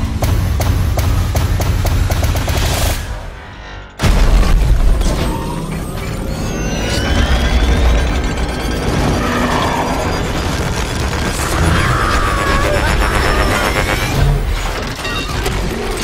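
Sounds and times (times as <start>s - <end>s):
deep rumbling: 3.9s - 16.0s
heavy boom: 4.0s - 5.4s.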